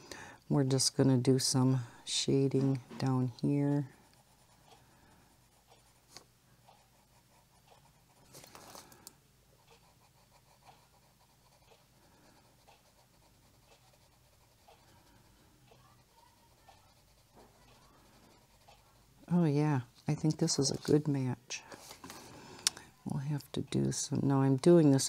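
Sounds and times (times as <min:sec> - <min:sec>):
pencil scratching on paper: 0:03.0 - 0:08.9, 0:09.6 - 0:19.3.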